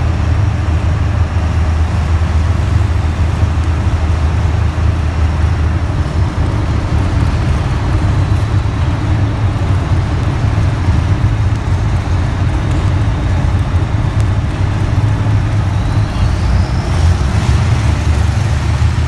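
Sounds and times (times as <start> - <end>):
truck engine idling: 0.0 - 19.0.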